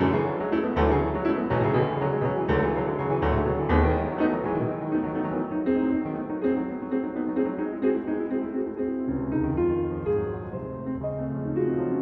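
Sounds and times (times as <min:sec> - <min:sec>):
grand piano playing: 0:00.0 - 0:12.0
deep bass piano notes: 0:09.1 - 0:12.0.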